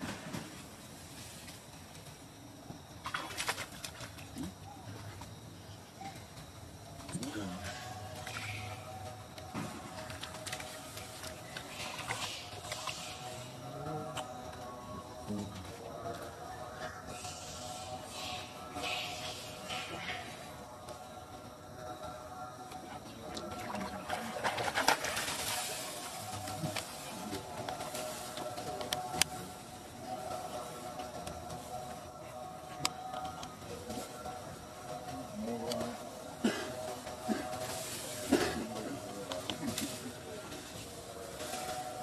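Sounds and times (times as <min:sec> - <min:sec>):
water splashing and sloshing: 0:03.0 - 0:04.4, 0:23.3 - 0:28.4.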